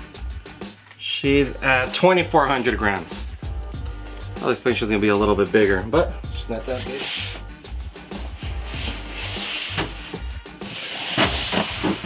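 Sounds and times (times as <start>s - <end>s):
background music: 0.0s - 12.0s
plastic tub sliding on metal rack: 10.6s - 12.0s.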